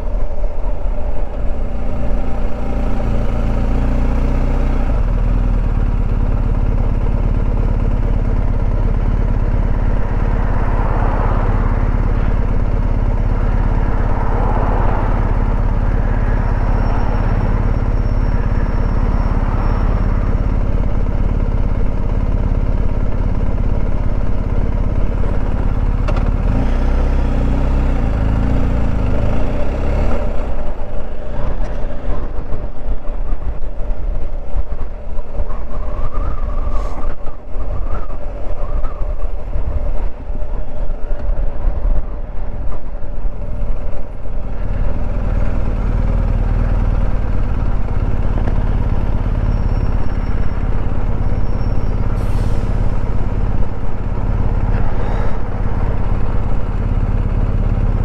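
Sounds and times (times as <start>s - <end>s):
motorcycle engine idling: 0.0s - 26.5s, 37.7s - 58.0s.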